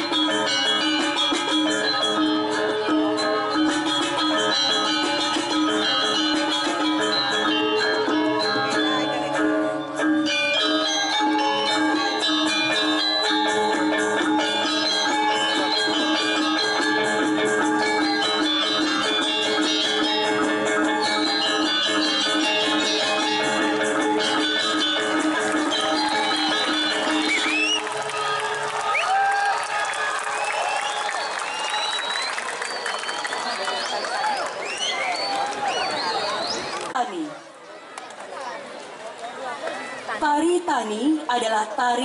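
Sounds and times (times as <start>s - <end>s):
gamelan playing: 0.0s - 29.3s
audience applause: 25.6s - 37.0s
rising whistles: 27.3s - 27.9s, 30.4s - 36.7s.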